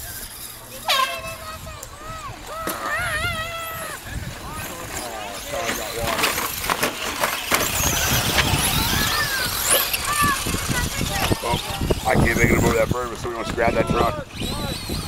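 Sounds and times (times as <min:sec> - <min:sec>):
people talking nearby: 0:00.0 - 0:15.0
rc truck motor whines: 0:00.0 - 0:15.0
tyres and landings clattering: 0:04.8 - 0:11.5.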